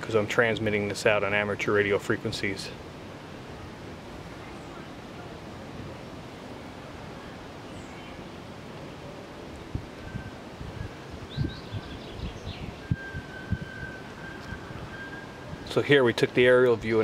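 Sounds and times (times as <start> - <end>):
outdoor background hiss: 0.0 - 17.0
wind buffeting microphone: 9.6 - 15.8
faint steady high tone: 10.0 - 11.2, 12.7 - 16.0.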